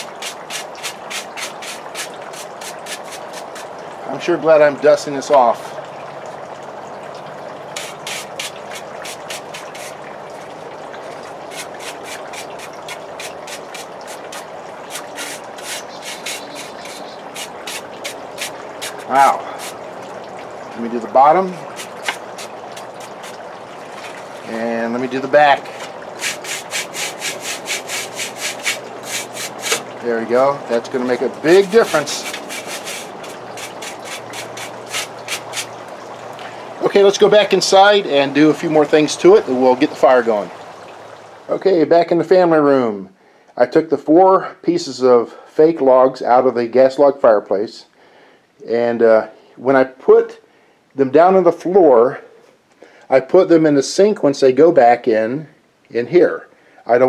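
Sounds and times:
brush sweeping a log: 0.0 - 3.7, 7.8 - 10.0, 11.5 - 19.8, 21.7 - 23.3, 26.2 - 29.9, 31.5 - 35.7
steady hiss: 11.5 - 20.0, 24.4 - 41.6.

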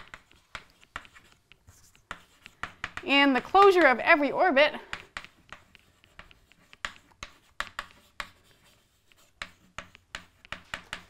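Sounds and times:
chalk writing on chalkboard: 0.0 - 11.0.

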